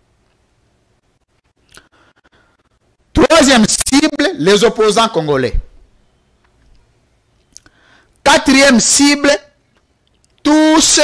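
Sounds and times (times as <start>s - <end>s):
soft mouth clicks: 1.6s - 1.9s, 7.4s - 7.8s, 10.0s - 10.4s
short breath: 1.7s - 2.8s, 7.6s - 8.2s.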